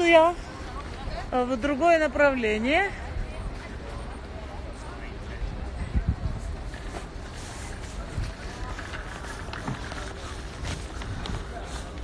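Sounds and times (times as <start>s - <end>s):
city street noise: 0.0s - 12.0s
faint voices: 0.0s - 12.0s.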